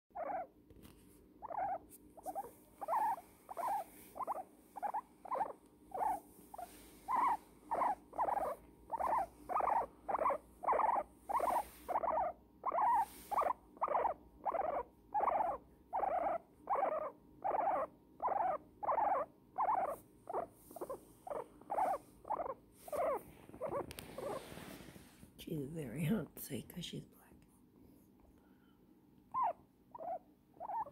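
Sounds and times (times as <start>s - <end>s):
guinea pig squeaking: 0.1s - 0.5s, 1.4s - 24.4s, 29.3s - 30.9s.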